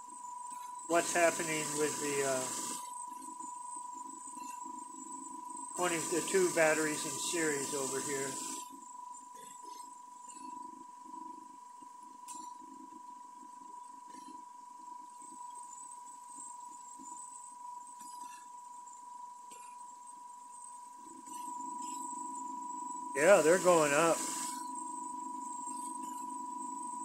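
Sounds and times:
high-pitched electrical whine: 0:00.0 - 0:11.6, 0:20.9 - 0:27.0
low electrical hum: 0:00.0 - 0:27.0.

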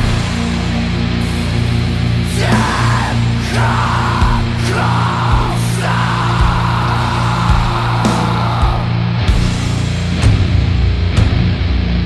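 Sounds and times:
distorted guitar and bass: 0:00.0 - 0:12.0.

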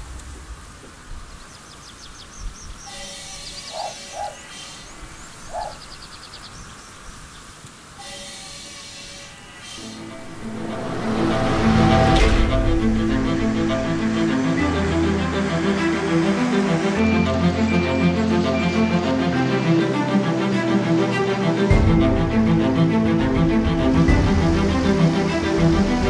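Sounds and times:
small birds chirping: 0:00.8 - 0:10.1
music with sustained string notes: 0:02.6 - 0:26.0.

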